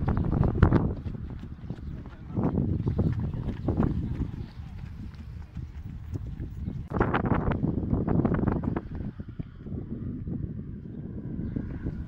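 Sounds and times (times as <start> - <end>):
runners footsteps on pavement: 0.0 - 9.9.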